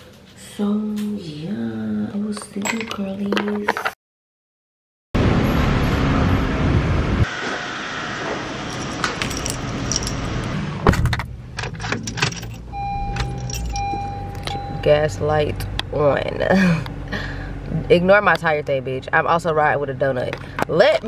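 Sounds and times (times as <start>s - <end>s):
car keys jangling: 8.6s - 10.6s, 11.2s - 14.7s
car electronic chime: 12.6s - 15.2s.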